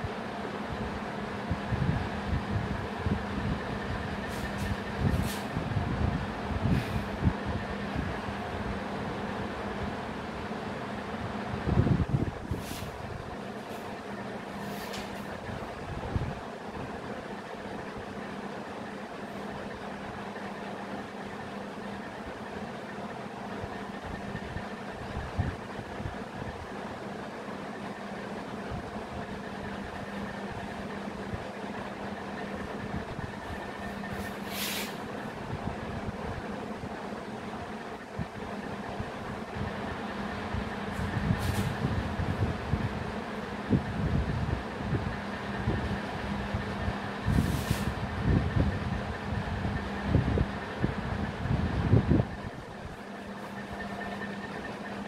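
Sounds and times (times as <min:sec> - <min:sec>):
steady mechanical hum: 0:00.0 - 0:55.0.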